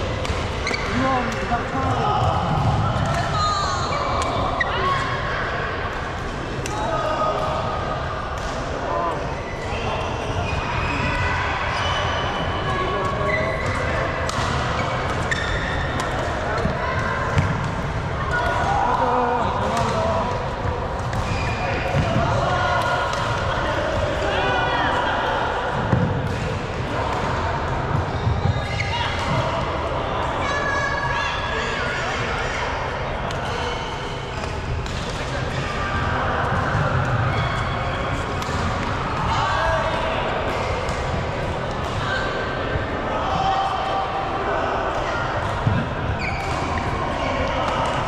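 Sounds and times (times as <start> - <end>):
voices in hall: 0.0 - 48.0.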